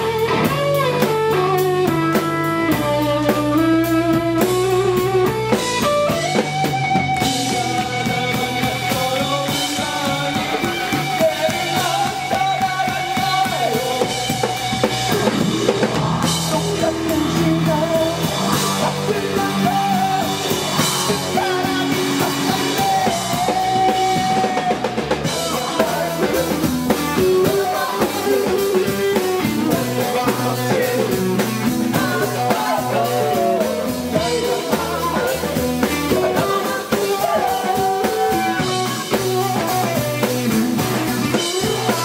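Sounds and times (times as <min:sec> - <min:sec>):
drum kit with cymbals: 0:00.0 - 0:42.0
electric guitar: 0:00.0 - 0:42.0
man singing: 0:00.0 - 0:42.0.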